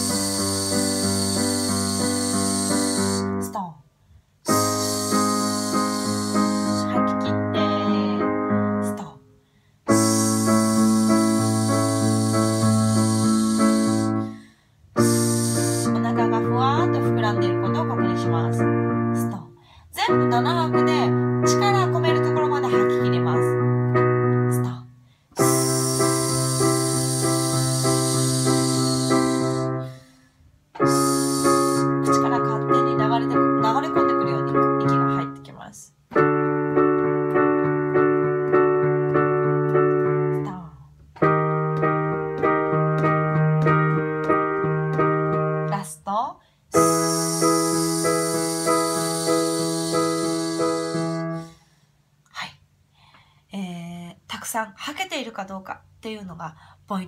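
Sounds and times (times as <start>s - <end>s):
electric piano chords: 0.0s - 3.6s, 4.5s - 9.2s, 9.9s - 19.4s, 20.0s - 24.8s, 25.4s - 30.1s, 30.7s - 45.9s, 46.7s - 51.6s
hissed breath exhale: 25.4s - 32.0s, 47.0s - 51.9s.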